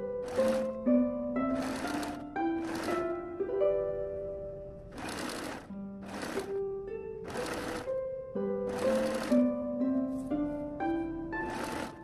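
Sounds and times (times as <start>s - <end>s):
background music: 0.0s - 12.0s
sewing machine stitching: 0.2s - 0.8s, 1.5s - 3.2s, 4.9s - 6.6s, 7.2s - 8.0s, 8.7s - 9.5s, 11.4s - 12.0s.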